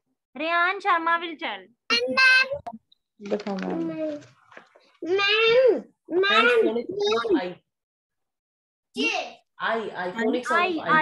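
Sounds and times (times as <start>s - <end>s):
child speaking over video call: 0.3s - 2.8s, 3.6s - 4.4s, 5.0s - 7.6s, 8.9s - 9.5s, 10.2s - 11.0s.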